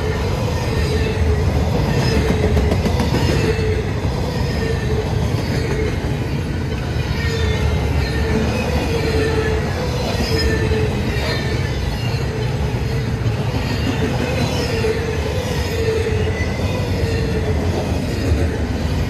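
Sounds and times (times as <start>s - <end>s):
low rumble of train wheels on rail: 0.0s - 19.0s
wavering wheel squeal: 0.1s - 19.0s.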